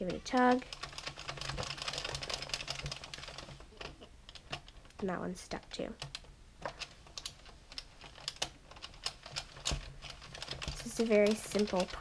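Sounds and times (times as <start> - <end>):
knitting machine plastic clicking: 0.0 - 5.0, 6.0 - 12.0.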